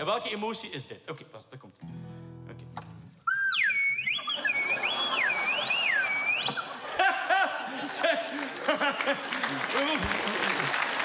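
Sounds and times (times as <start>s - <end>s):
slide whistle sliding up and down: 3.2s - 6.8s
audience noise: 3.3s - 11.0s.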